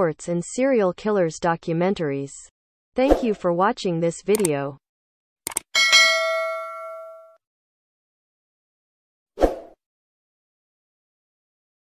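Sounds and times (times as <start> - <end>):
bright notification ding: 5.8 - 7.4.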